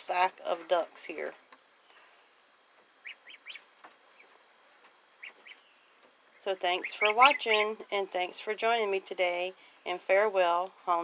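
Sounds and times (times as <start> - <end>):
ducklings peeping: 3.0 - 8.3.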